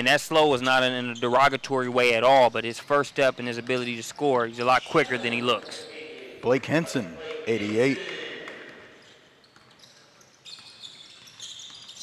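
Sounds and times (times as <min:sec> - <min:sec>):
sneaker squeaks on court: 0:04.6 - 0:06.1, 0:08.9 - 0:12.0.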